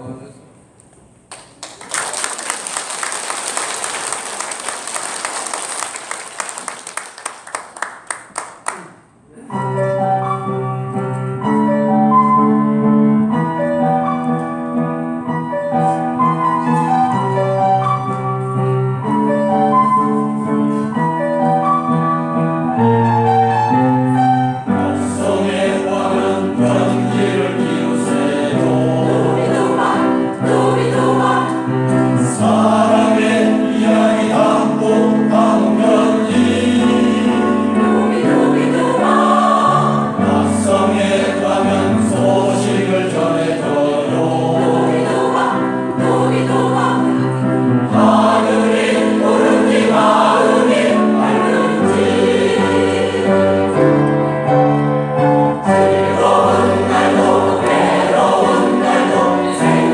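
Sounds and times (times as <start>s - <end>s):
piano accompaniment: 2.6s - 59.9s
mixed choir singing: 24.6s - 54.0s, 55.6s - 59.9s.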